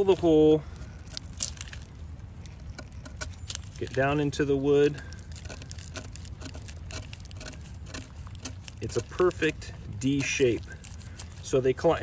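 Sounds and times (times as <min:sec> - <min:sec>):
knife scraping bark: 0:00.0 - 0:12.0.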